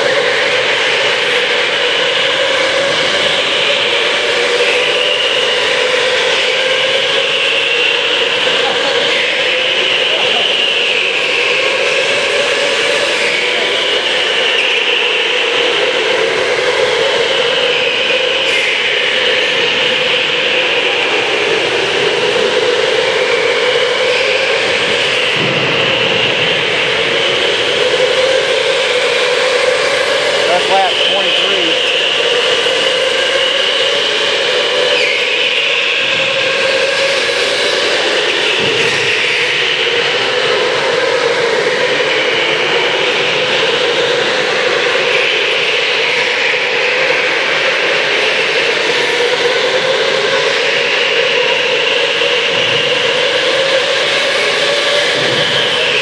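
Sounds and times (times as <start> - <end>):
electric go-kart motors whining: 0.0 - 56.0.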